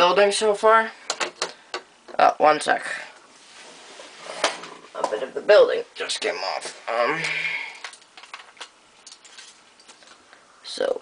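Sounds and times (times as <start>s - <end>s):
low room noise: 0.0s - 11.0s
plastic bricks being handled: 7.8s - 10.2s.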